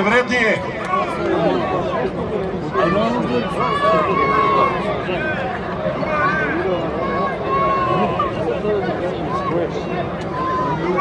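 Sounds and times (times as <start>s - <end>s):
crowd chatter: 0.0s - 11.0s
people talking and calling out: 0.0s - 11.0s.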